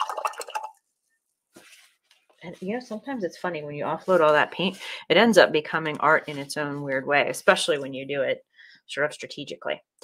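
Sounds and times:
paintbrush swishing in water jar: 0:01.5 - 0:03.0, 0:03.8 - 0:04.8
paper towel rustle: 0:01.5 - 0:03.0.

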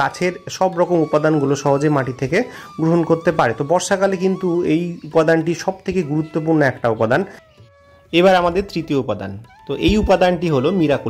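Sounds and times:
man talking: 0:00.0 - 0:07.4, 0:08.1 - 0:11.0.

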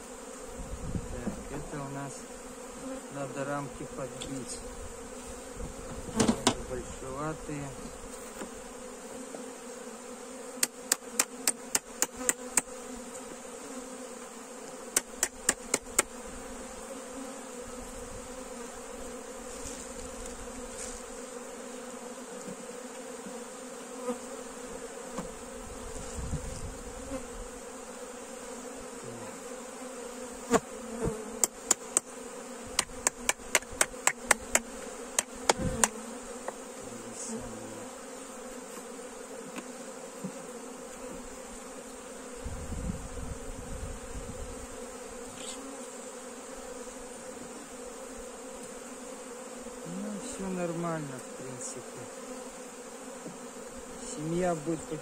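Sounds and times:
bees buzzing: 0:00.0 - 0:55.0.

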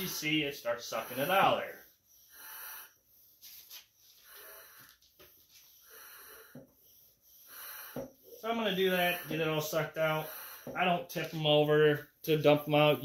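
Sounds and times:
pump sucking oil with hissing slurps: 0:05.7 - 0:11.2.

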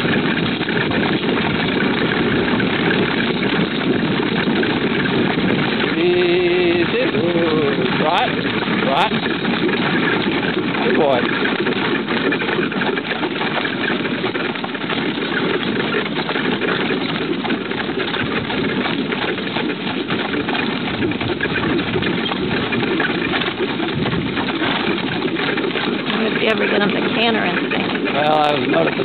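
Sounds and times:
harness jingling: 0:00.0 - 0:29.0
wheels and hooves on gravel: 0:00.0 - 0:29.0.

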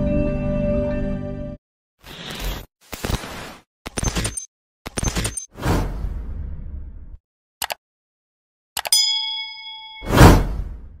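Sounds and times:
notification bell ding: 0:08.9 - 0:10.4.

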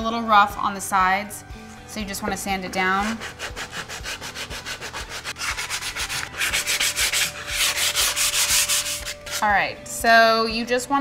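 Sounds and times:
sandpaper rubbing on wood: 0:03.0 - 0:09.4.

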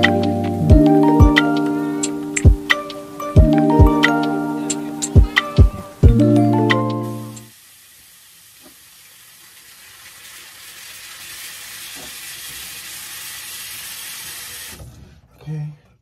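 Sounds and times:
water running from sink tap: 0:07.1 - 0:14.8.

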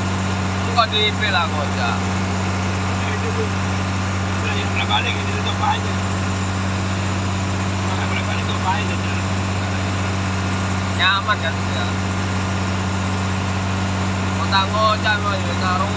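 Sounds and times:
boat engine droning: 0:00.0 - 0:15.9.

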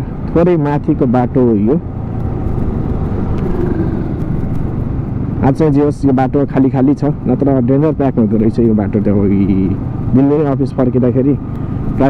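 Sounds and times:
motorcycle engine running: 0:00.0 - 0:05.7
road noise: 0:00.0 - 0:12.0
wind: 0:00.0 - 0:12.0.

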